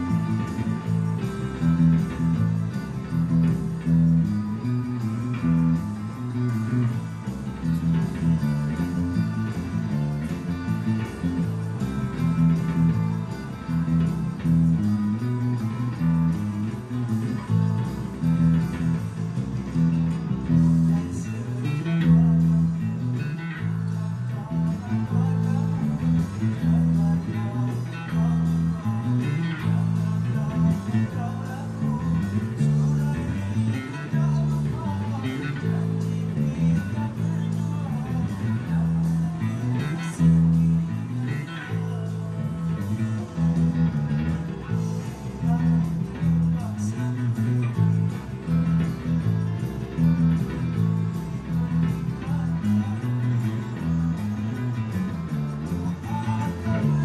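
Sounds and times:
electric bass guitar: 0.0 - 57.0.

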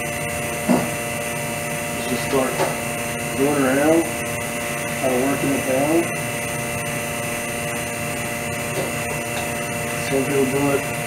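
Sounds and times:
vacuum pump humming: 0.0 - 11.0.

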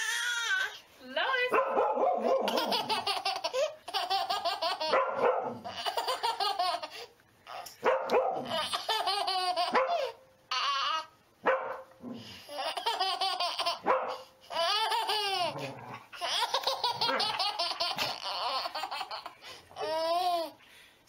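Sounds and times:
baby laughing: 2.4 - 5.0, 5.6 - 7.7, 8.4 - 11.1, 12.5 - 20.6.

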